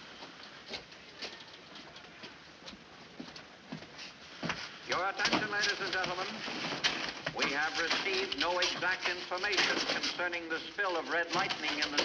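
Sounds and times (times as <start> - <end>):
cash rustling and tapping: 4.9 - 12.0.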